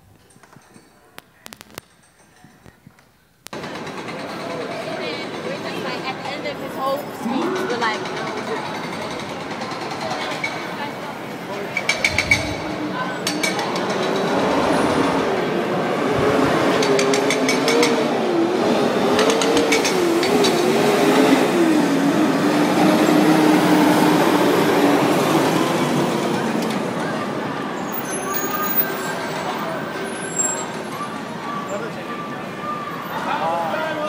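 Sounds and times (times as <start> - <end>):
outdoor crowd noise: 0.0 - 34.0.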